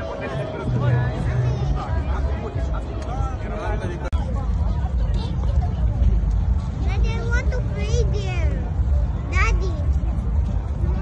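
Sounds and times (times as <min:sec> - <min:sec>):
distant people talking: 0:00.0 - 0:11.0.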